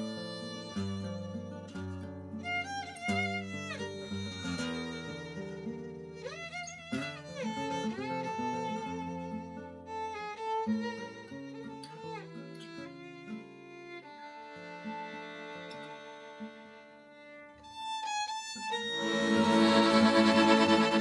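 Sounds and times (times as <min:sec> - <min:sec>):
violin melody with vibrato: 0:00.0 - 0:01.6, 0:02.4 - 0:21.0
acoustic guitar: 0:00.0 - 0:21.0
accordion: 0:18.6 - 0:21.0.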